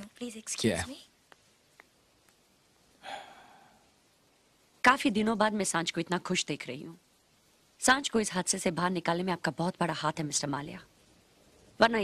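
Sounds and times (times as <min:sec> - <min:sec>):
breathy sigh: 0:03.0 - 0:03.9.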